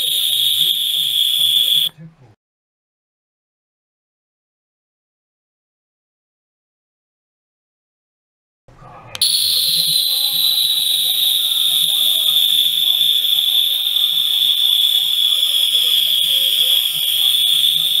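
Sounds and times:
ultrasonic cleaner whining: 0.0s - 1.9s, 9.2s - 18.0s.

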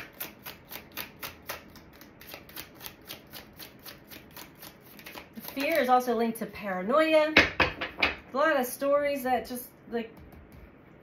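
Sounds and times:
cards being shuffled: 0.2s - 5.9s.

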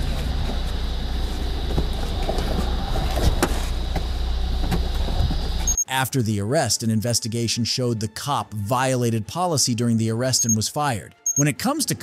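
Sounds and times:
car engine idling: 0.0s - 5.8s.

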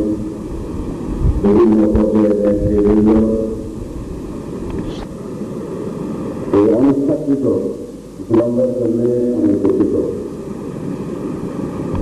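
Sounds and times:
low hall rumble: 0.0s - 12.0s
man speaking over public address: 1.4s - 3.7s, 6.5s - 10.3s.

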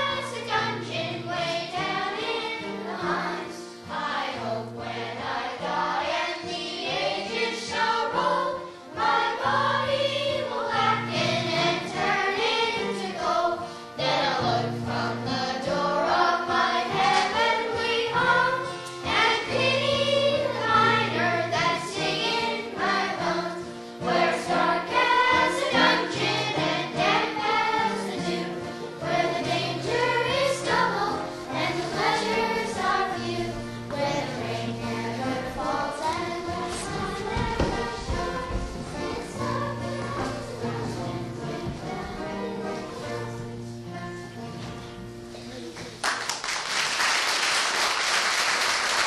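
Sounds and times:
children's choir singing: 0.0s - 44.6s.

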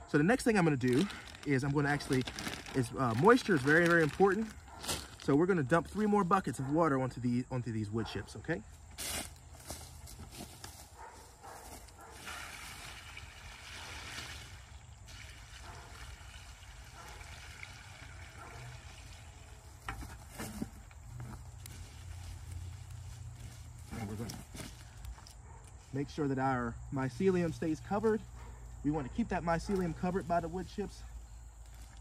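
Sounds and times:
water pouring onto wood chips: 0.7s - 5.2s, 12.2s - 19.8s.

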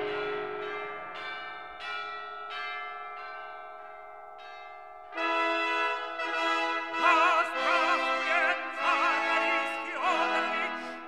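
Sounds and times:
bells pealing: 0.0s - 11.0s.

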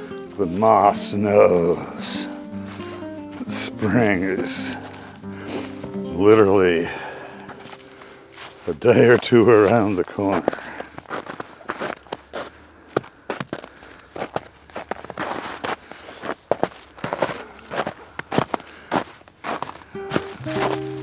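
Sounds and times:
held musical notes: 0.0s - 10.0s, 19.9s - 21.0s
footsteps crunching through dry leaves: 0.0s - 21.0s.

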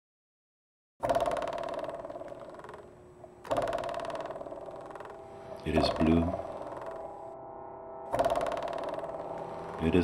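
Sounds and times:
buzzing tone: 1.0s - 10.0s.

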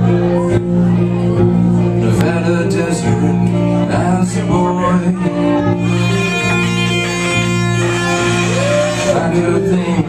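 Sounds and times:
bass guitar: 0.0s - 10.0s
electric guitars: 0.0s - 10.0s.

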